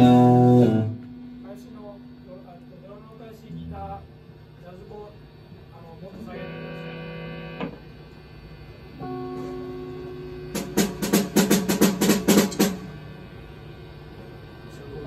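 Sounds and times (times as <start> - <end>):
held instrument note ringing: 9.0 - 10.7
drum kit hits: 10.3 - 13.1.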